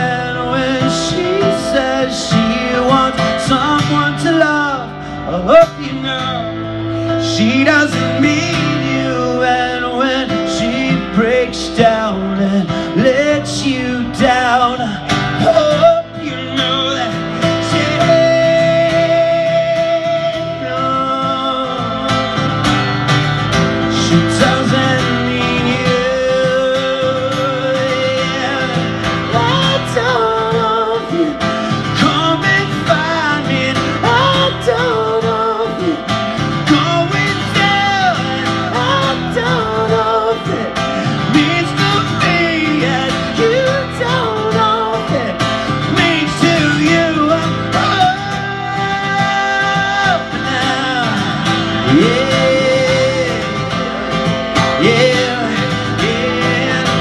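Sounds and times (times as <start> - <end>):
acoustic guitar strumming: 0.0 - 57.0
man singing: 0.0 - 57.0.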